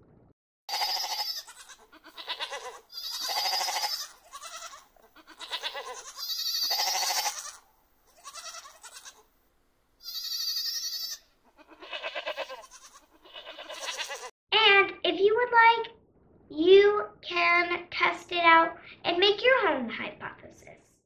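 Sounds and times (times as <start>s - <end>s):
goats bleating: 0.7s - 9.3s, 10.0s - 14.3s.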